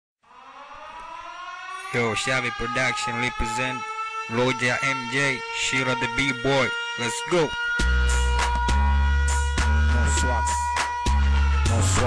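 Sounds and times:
siren-like rising tone: 0:00.2 - 0:12.0.

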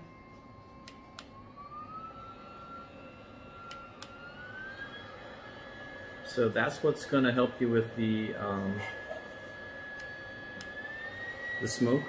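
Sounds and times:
stove fan whining: 0:00.0 - 0:12.0.

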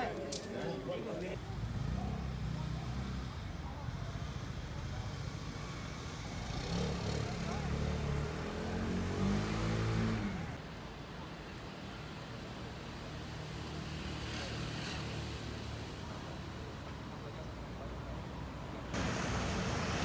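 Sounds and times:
faint background voices: 0:00.0 - 0:19.4.

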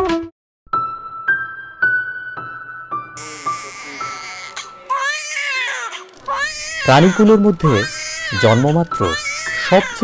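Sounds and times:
newborn baby crying: 0:03.2 - 0:10.0.

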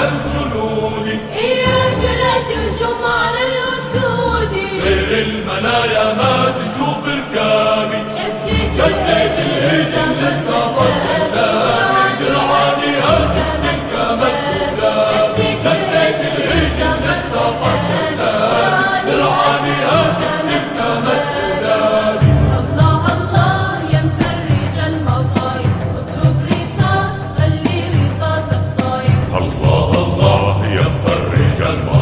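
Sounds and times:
voices singing in chorus: 0:00.0 - 0:32.0.

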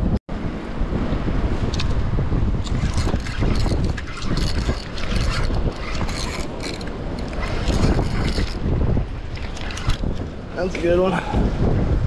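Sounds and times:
wind buffeting microphone: 0:00.0 - 0:12.0
fishing reel rattling and clicking: 0:02.6 - 0:08.7, 0:09.3 - 0:10.3.

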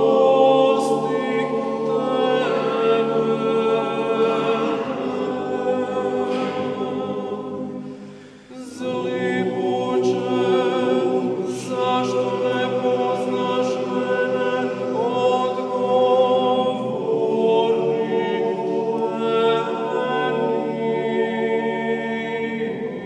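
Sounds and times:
male choir singing: 0:00.0 - 0:23.0.

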